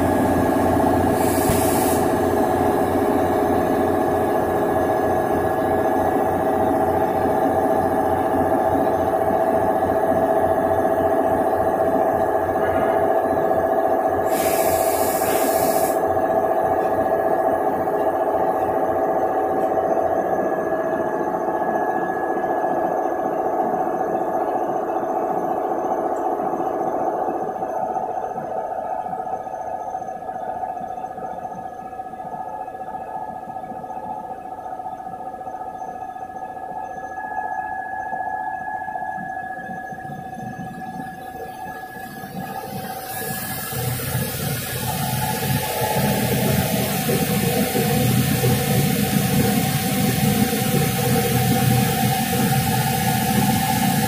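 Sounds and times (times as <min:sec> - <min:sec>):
knitting machine whine and clatter: 0:00.0 - 0:54.0
loud hiss: 0:01.1 - 0:02.3, 0:14.2 - 0:16.0.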